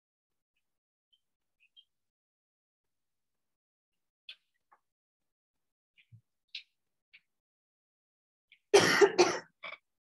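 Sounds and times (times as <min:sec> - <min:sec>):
person coughing: 0:08.7 - 0:09.8.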